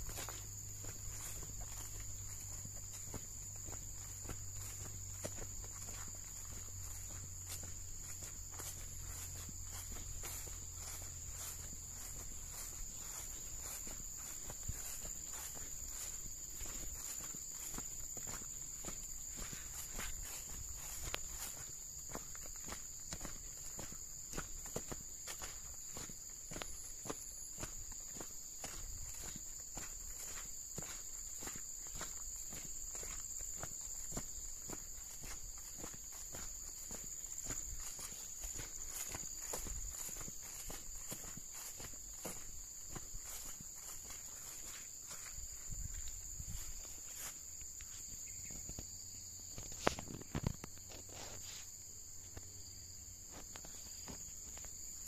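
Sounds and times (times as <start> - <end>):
footsteps on dirt track: 0.0 - 55.0
insects chorus: 0.0 - 55.0.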